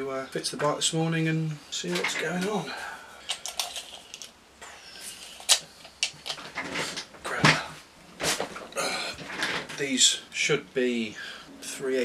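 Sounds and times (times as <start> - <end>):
sharp clicks of small parts: 3.3 - 4.4.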